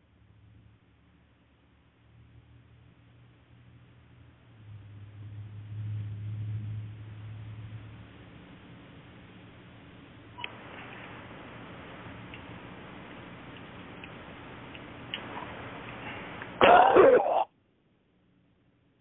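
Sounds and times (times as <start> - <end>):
low phone line hum: 0.0 - 19.0.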